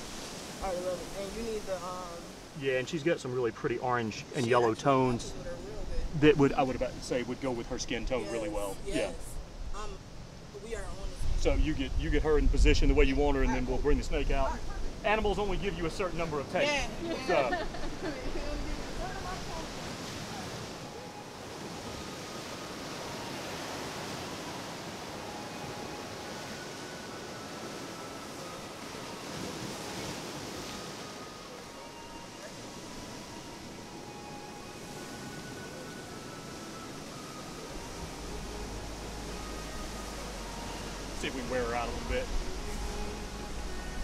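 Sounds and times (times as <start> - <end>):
ocean surf: 0.0 - 11.4, 14.5 - 44.0
wind: 0.0 - 44.0
faint high notes: 3.0 - 9.2, 20.3 - 44.0.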